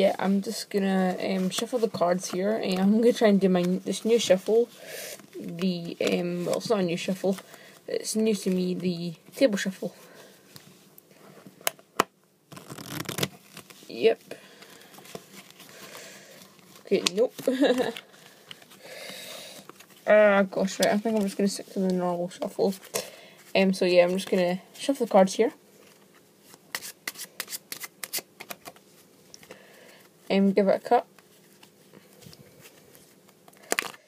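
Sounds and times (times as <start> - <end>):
playing cards shuffling: 1.2 - 8.7, 12.5 - 23.0, 25.8 - 29.5
cards riffling: 12.5 - 13.8, 26.5 - 28.8.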